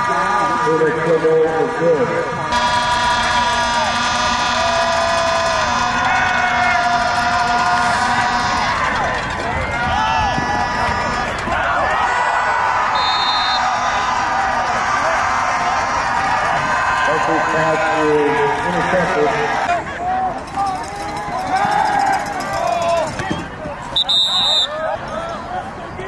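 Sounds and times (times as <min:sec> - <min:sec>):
stadium crowd shouting and cheering: 0:00.0 - 0:26.0
long held tones: 0:02.5 - 0:09.2.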